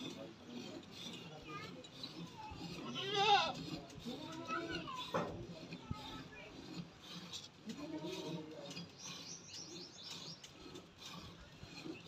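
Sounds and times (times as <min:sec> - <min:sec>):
animal bleating: 0:02.8 - 0:03.6.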